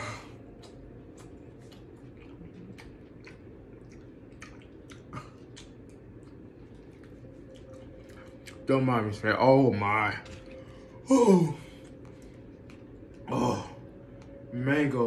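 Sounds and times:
wet chewing clicks and smacks: 0.3s - 8.7s, 11.8s - 13.3s.

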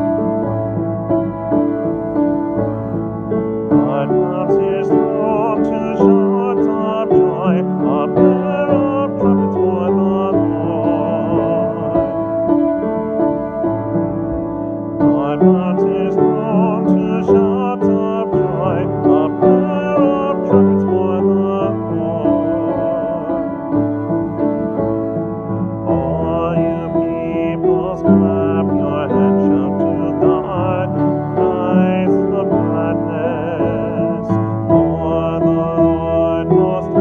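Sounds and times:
instrumental held chords: 0.0s - 37.0s
keyboard accompaniment: 0.0s - 37.0s
man singing with vibrato: 3.6s - 13.9s, 14.5s - 37.0s.

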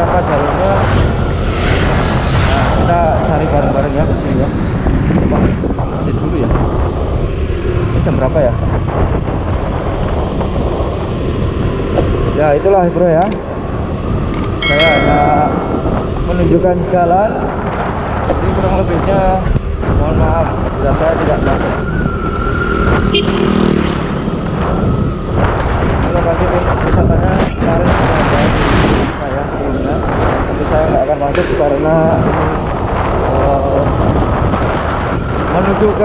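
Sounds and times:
road noise: 0.0s - 36.0s
wind buffeting microphone: 0.0s - 36.0s.

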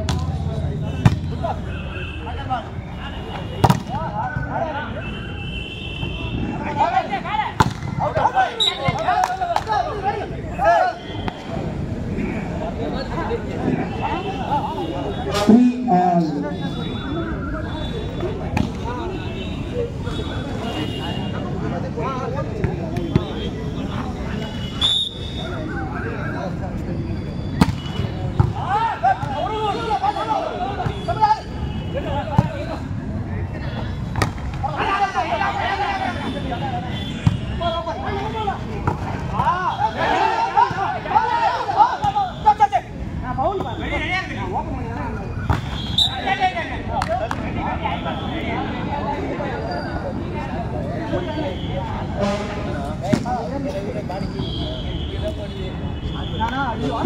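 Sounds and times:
people talking and shouting: 0.0s - 57.0s.

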